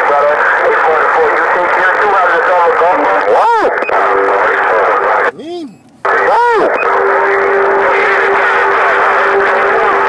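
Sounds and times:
noisy radio voice: 0.0s - 10.0s.

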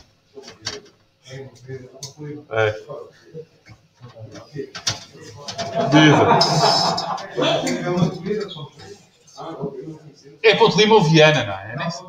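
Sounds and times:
voices murmuring in a room: 0.0s - 12.0s.

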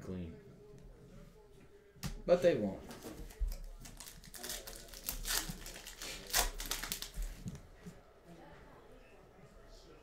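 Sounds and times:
foil wrapper tearing and crinkling: 3.8s - 7.2s.

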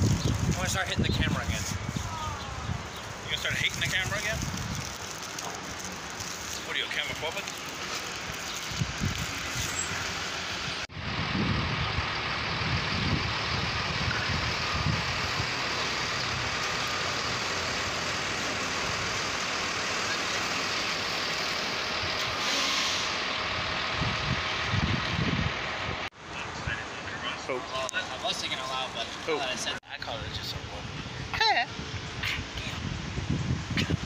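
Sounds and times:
street traffic rumble: 0.0s - 34.0s.

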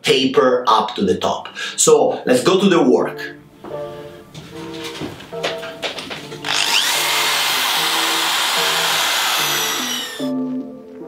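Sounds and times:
background music: 0.0s - 11.0s
power drill boring into wood: 6.4s - 10.3s.

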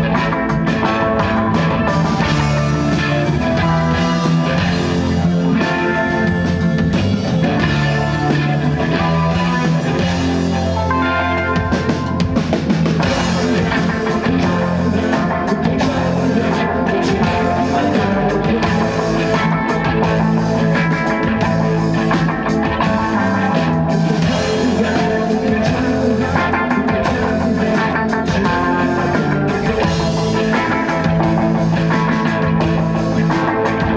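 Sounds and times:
drum kit: 0.0s - 33.9s
electric guitars: 0.0s - 33.9s.

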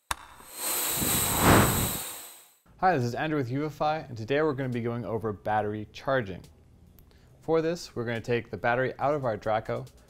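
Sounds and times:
whooshing swell: 0.9s - 2.3s.

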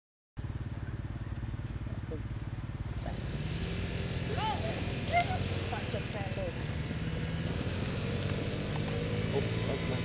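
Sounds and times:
small engine running: 0.4s - 10.0s.

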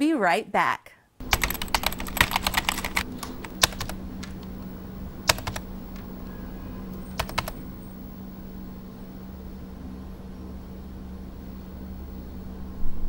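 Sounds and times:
computer keyboard typing: 1.2s - 4.6s, 5.2s - 6.1s, 7.0s - 7.6s
steady low hum: 1.2s - 13.0s.

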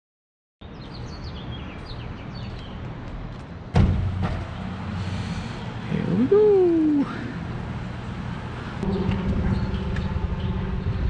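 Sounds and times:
small birds chirping: 0.6s - 3.2s
city background hum: 0.6s - 11.0s
loud thump: 3.7s - 4.5s.

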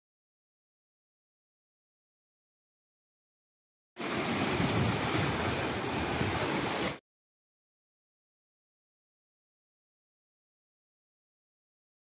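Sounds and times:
water rushing through channel: 4.0s - 7.0s.

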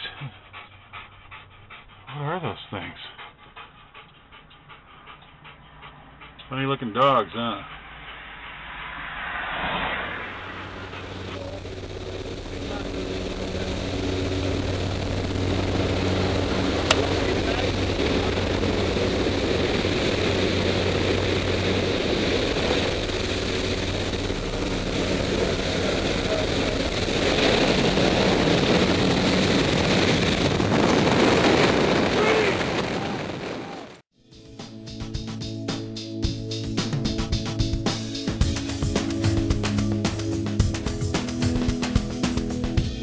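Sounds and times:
propeller plane drone: 4.0s - 34.0s, 34.6s - 43.0s
rush of air: 7.5s - 34.0s.

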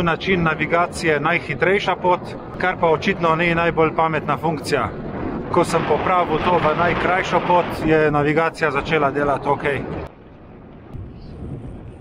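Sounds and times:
bicycle rolling noise: 0.0s - 12.0s
wind rumbling on microphone: 0.0s - 12.0s.

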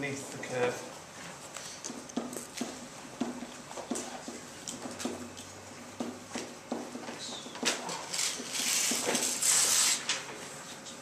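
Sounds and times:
stylus tapping and scraping on whiteboard: 1.6s - 9.4s.

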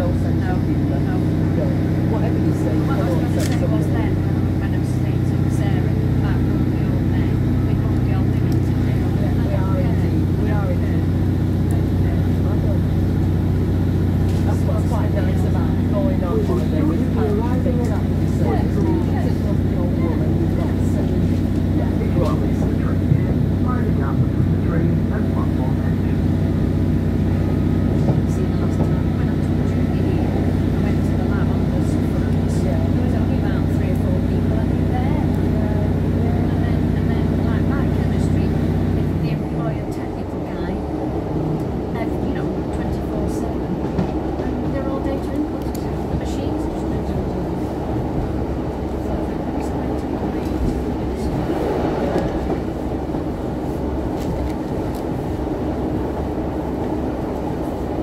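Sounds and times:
train diesel engine running: 0.0s - 58.0s
train wheels rumbling on track: 0.0s - 58.0s.

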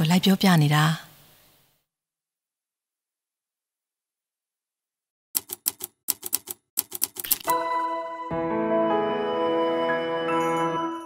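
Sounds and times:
typewriter-like clicks: 5.4s - 7.5s
sustained music chord: 7.5s - 11.0s.

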